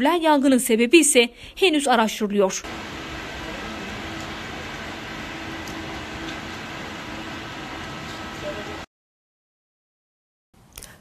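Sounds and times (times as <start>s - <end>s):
outdoor background noise: 0.0s - 8.9s.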